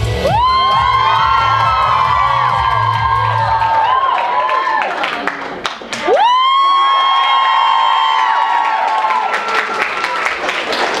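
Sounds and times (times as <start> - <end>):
high-pitched cheer: 0.0 - 5.2, 6.0 - 10.5
audience cheering and applauding: 0.0 - 11.0.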